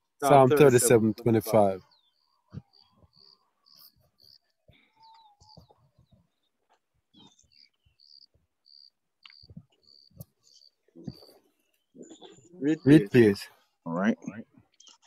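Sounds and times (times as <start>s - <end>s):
faint high chirps: 1.8s - 13.4s.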